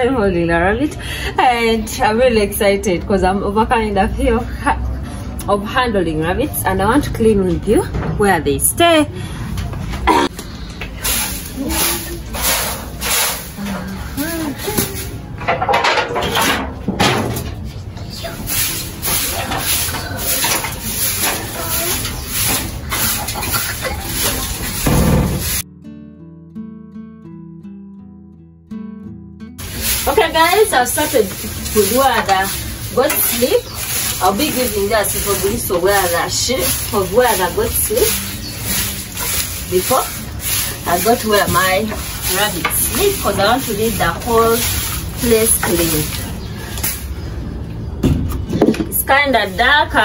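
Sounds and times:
broom sweeping floor: 0:10.5 - 0:16.5, 0:17.3 - 0:25.6, 0:29.6 - 0:47.2, 0:49.0 - 0:50.0
rustling scraping and knocking: 0:10.8 - 0:25.6, 0:29.6 - 0:47.2
person speaking: 0:29.7 - 0:46.3.

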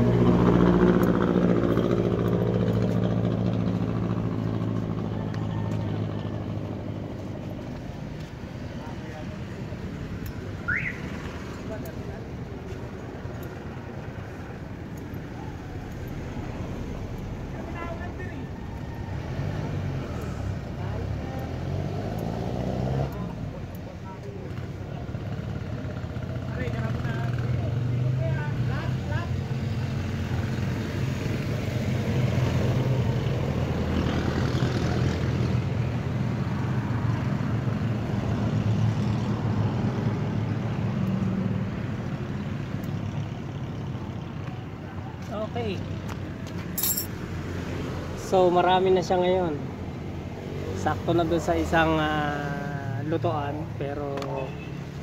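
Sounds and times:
vehicle engine running: 0:00.0 - 0:29.3.

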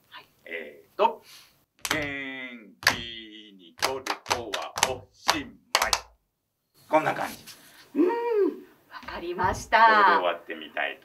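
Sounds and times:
hand claps and foot stamps: 0:01.8 - 0:02.2, 0:02.8 - 0:03.2, 0:03.8 - 0:06.2
person chanting rhythm words: 0:01.8 - 0:06.2.

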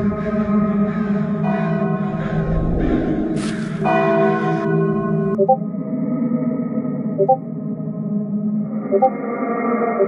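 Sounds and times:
low eerie drone: 0:00.0 - 0:10.0
church bell tolling: 0:03.8 - 0:05.3.

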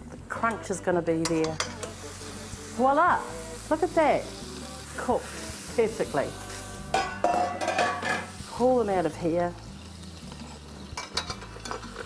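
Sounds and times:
utensil scraping a frying pan: 0:01.2 - 0:12.0.

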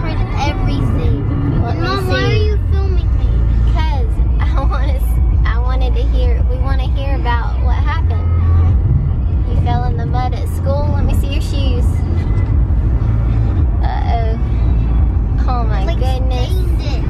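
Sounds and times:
people talking: 0:00.0 - 0:08.3, 0:09.5 - 0:12.0, 0:13.8 - 0:14.4, 0:15.4 - 0:17.0
car cabin rumble: 0:00.0 - 0:17.0.

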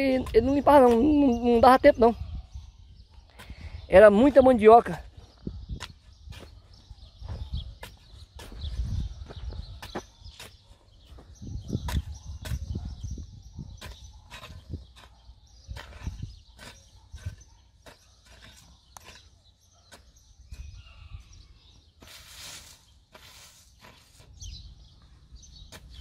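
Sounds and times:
hoe chopping into dry soil: 0:05.7 - 0:13.0, 0:13.7 - 0:20.8, 0:22.0 - 0:24.4, 0:25.6 - 0:26.0.

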